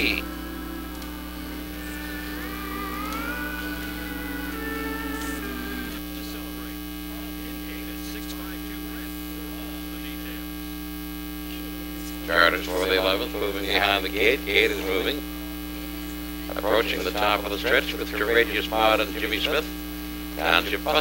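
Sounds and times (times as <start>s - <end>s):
faint wavering tones: 0.0s - 6.5s
electrical mains hum: 0.0s - 21.0s.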